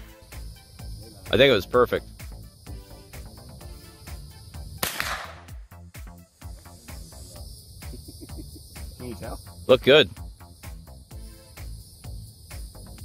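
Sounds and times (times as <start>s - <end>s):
rifle shot: 4.8s - 5.5s.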